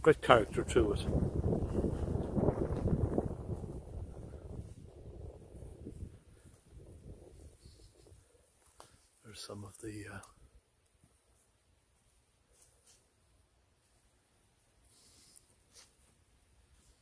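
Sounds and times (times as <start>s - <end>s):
wind buffeting microphone: 0.0s - 8.2s.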